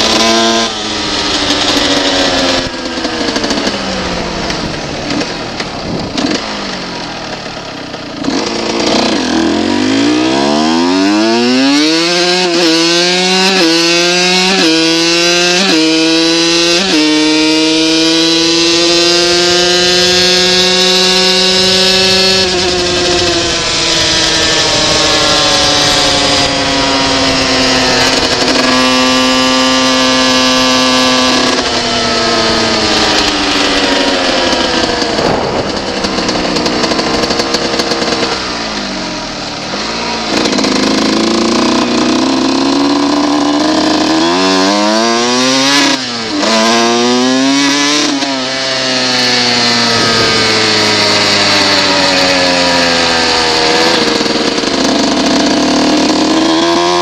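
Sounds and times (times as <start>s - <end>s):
two-stroke motorcycle engine revving: 0.0s - 57.0s.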